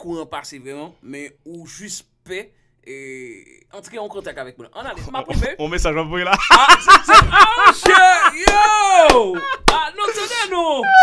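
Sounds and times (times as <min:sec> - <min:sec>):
man laughing: 0:06.3 - 0:09.9.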